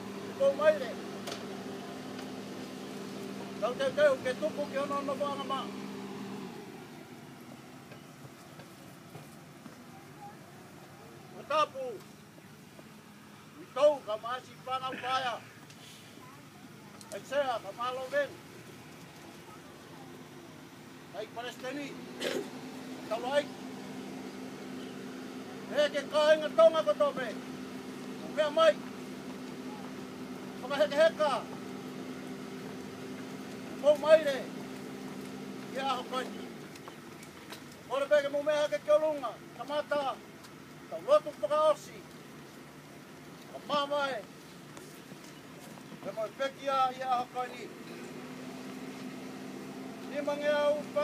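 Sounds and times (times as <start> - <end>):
low mechanical hum: 0.0 - 51.0.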